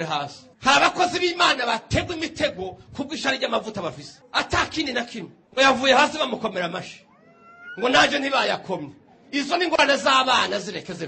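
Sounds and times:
man preaching into a microphone: 0.0s - 7.1s, 7.8s - 11.0s.

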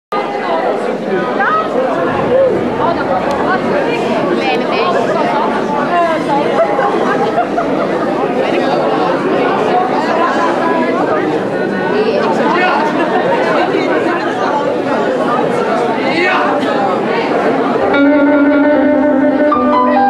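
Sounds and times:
audience chatter: 0.1s - 20.0s.

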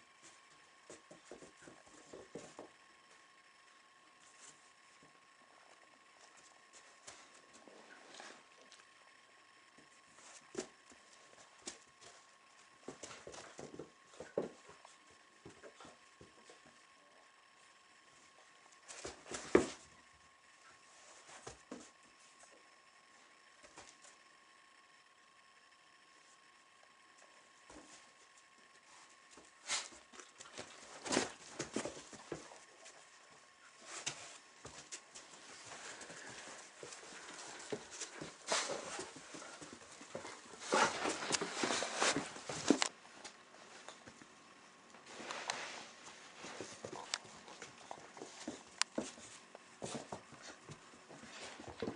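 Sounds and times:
puppy paws tapping and scuffing: 0.2s - 2.8s, 9.8s - 16.8s, 18.7s - 20.0s, 21.0s - 22.6s, 27.7s - 44.3s, 45.0s - 51.9s.

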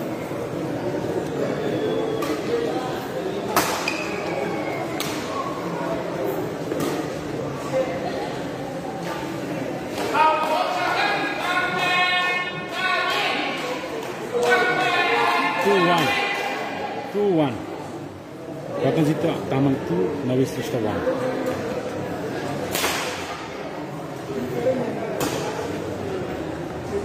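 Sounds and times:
spectators chattering: 0.0s - 27.0s.

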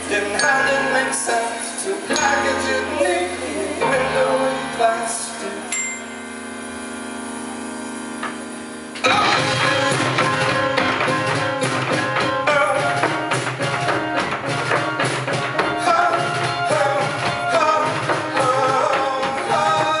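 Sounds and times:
live band playing: 7.3s - 20.0s
drums: 7.7s - 20.0s.

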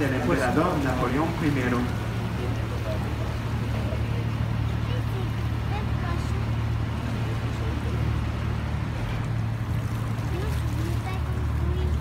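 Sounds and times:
boat engine humming: 0.0s - 12.0s
faint passenger chatter: 0.0s - 12.0s.

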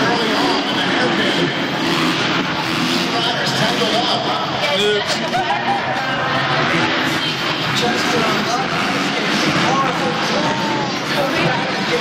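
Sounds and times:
crowd babble: 0.0s - 12.0s
dirt bike engines revving: 0.0s - 12.0s.

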